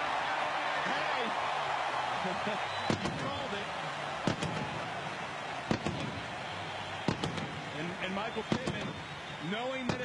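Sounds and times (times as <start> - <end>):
stadium crowd cheering: 0.0 - 10.0
cannon bangs: 5.7 - 6.2, 7.1 - 7.6.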